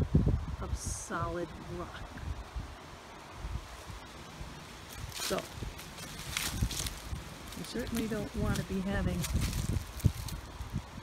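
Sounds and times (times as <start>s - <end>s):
wind buffeting microphone: 0.0s - 11.0s
faint rustling: 3.6s - 10.8s.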